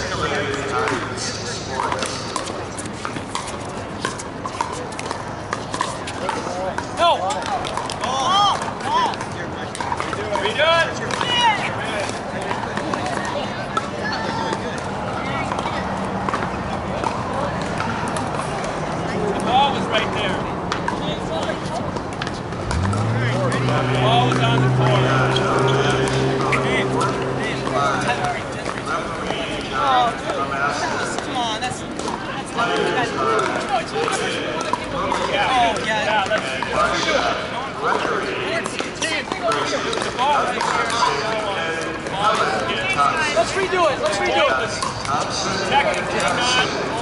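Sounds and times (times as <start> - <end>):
paddles hitting balls: 37.9 - 42.6.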